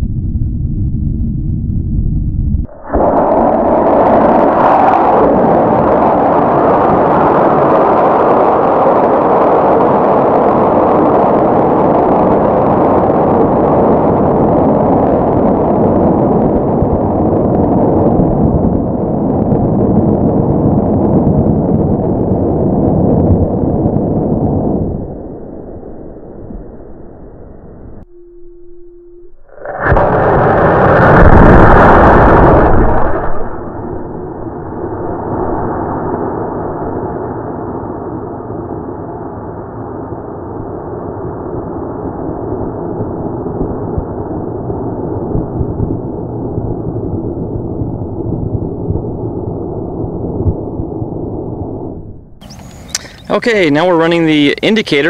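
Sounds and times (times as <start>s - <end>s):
air rushing: 1.3s - 7.6s, 29.5s - 37.0s, 51.8s - 54.7s
short steady beep: 28.0s - 29.5s.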